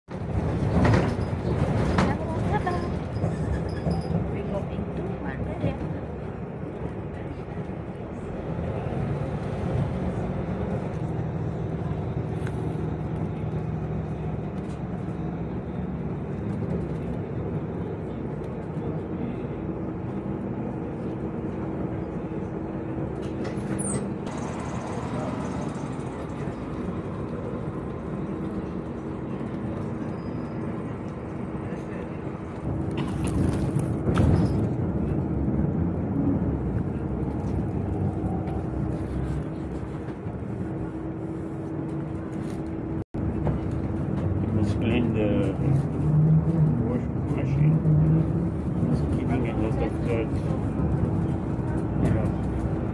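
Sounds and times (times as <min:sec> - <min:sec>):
bus engine and road noise: 0:00.1 - 0:52.9.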